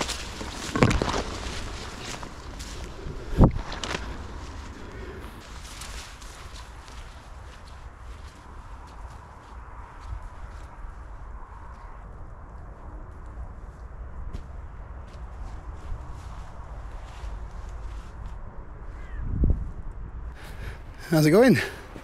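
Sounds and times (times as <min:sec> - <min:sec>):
footsteps on grass and leaves: 0:00.0 - 0:19.0
steady low rumble: 0:00.0 - 0:21.2.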